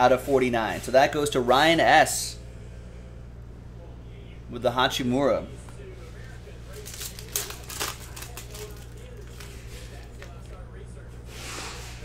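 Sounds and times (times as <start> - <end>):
low room hum: 0.0 - 12.0
cards rustling: 6.6 - 10.6.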